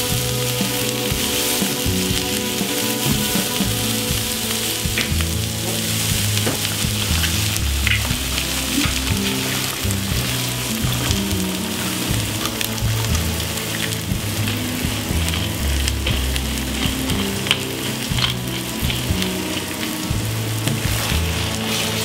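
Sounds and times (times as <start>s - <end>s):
background music: 0.0s - 22.0s
food sizzling in a frying pan: 0.0s - 22.0s
oil crackling pops: 0.0s - 22.0s.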